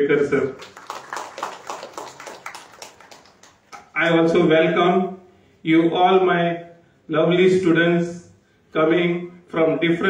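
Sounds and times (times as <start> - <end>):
audience applause: 0.5 - 4.2.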